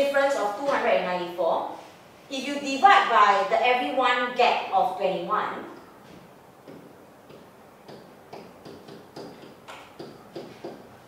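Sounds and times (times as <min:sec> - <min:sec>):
pen tapping on whiteboard: 0:06.6 - 0:10.9.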